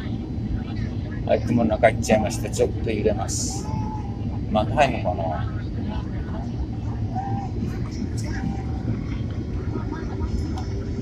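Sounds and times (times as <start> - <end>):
airflow noise: 0.0 - 11.0
airliner cabin engine rumble: 0.0 - 11.0.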